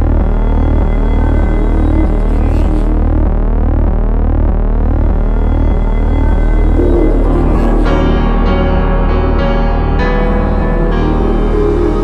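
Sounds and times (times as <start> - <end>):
low synth drone: 0.0 - 12.0
sweeping synth tones: 5.3 - 12.0.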